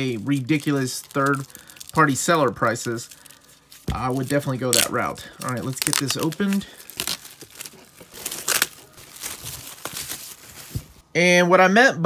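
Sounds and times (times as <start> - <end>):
plastic shrink-wrap tearing: 0.0 - 10.8.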